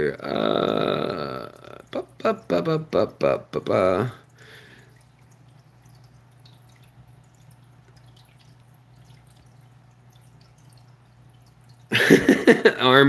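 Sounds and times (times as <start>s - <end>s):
water dripping and trickling: 1.4s - 12.7s.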